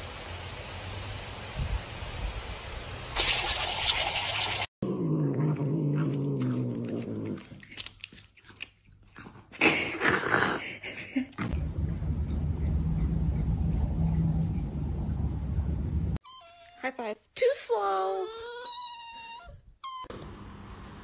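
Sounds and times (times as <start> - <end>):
lawn sprinkler hissing: 0.0 - 4.7
cat growling low: 4.8 - 7.8
cat gnawing food: 5.5 - 9.6.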